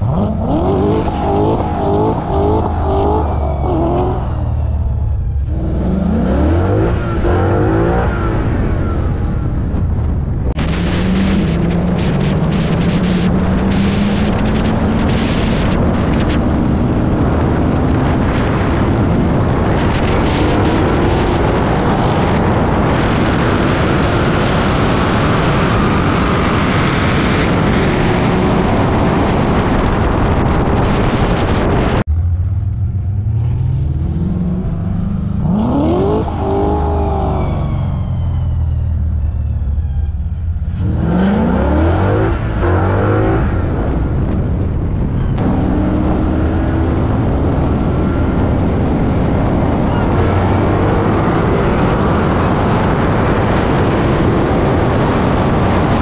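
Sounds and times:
car engine at full throttle: 0.0s - 56.0s
wind rush: 0.0s - 56.0s.

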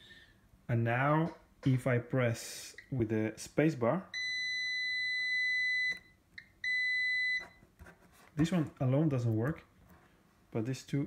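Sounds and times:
multimeter continuity beeps: 4.1s - 7.6s.

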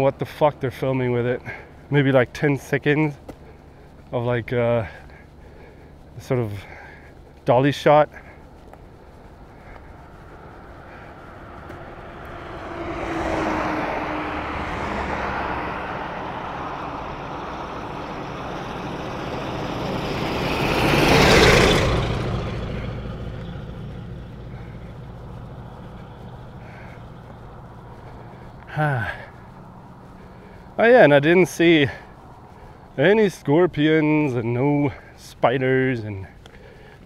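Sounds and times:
vehicle passing: 0.0s - 37.0s
tank truck overtaking: 9.3s - 33.6s.

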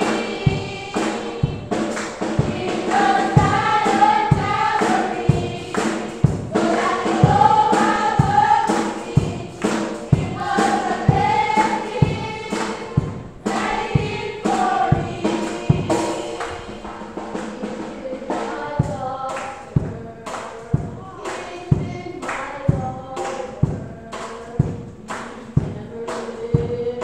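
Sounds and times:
steady percussive beat: 0.0s - 27.0s
youth choir singing gospel: 0.0s - 27.0s.

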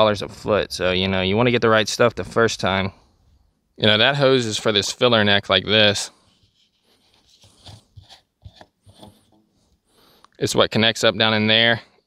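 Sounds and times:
cap threads scraping: 6.3s - 9.5s.

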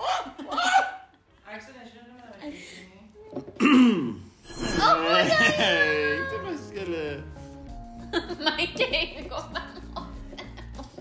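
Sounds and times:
people laughing: 5.0s - 7.2s, 8.1s - 11.0s.

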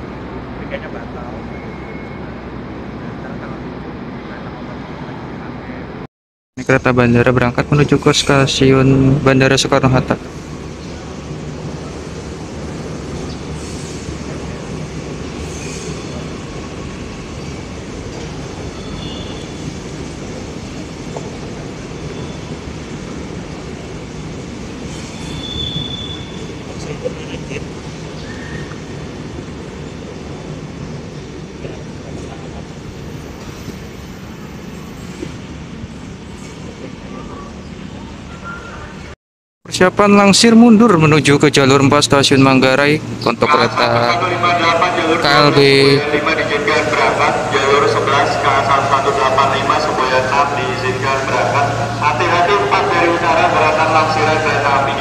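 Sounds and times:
train wheels rumbling on rails: 9.9s - 38.6s
high-pitched wheel squeals: 15.4s - 16.4s, 24.9s - 26.6s.

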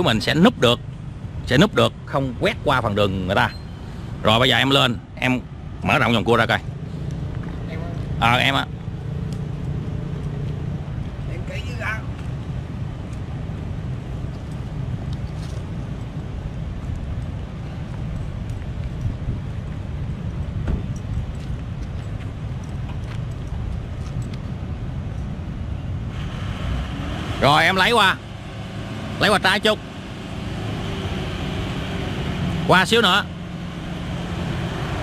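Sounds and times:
distant vehicle noise: 0.0s - 35.0s
wind: 0.0s - 35.0s.

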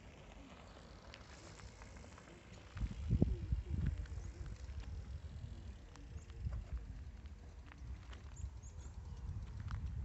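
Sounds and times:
footsteps crunching on gravel: 0.1s - 10.0s.

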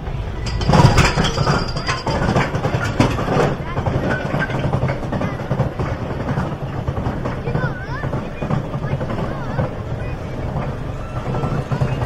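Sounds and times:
roller coaster lift chain rattling: 0.0s - 12.0s
clicks and clanks: 0.4s - 9.8s.

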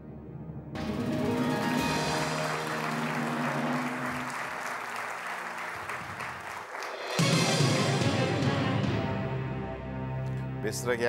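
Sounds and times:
game show music: 0.8s - 11.0s
studio audience applauding: 1.4s - 8.1s.

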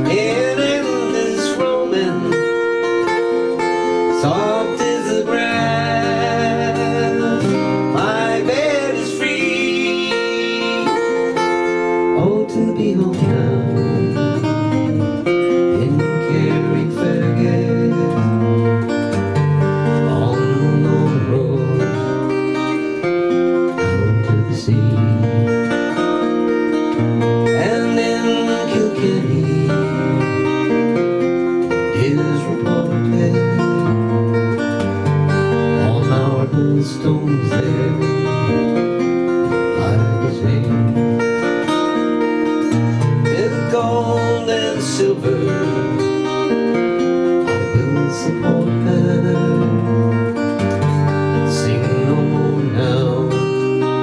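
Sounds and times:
acoustic guitar playing folk tune: 0.0s - 54.0s.

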